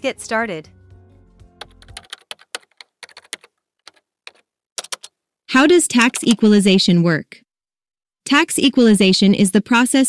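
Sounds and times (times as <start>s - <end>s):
background music: 0.0s - 2.7s
keyboard key clicks: 1.6s - 5.1s.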